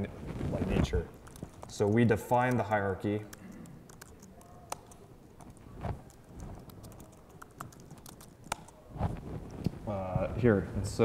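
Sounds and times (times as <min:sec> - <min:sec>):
laptop keyboard keystrokes: 0:01.1 - 0:08.8.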